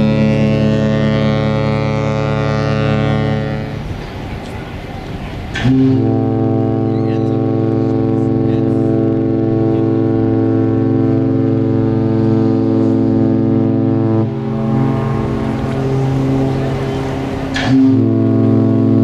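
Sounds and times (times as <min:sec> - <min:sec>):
ship's horn chord: 0:00.0 - 0:04.0, 0:05.5 - 0:19.0.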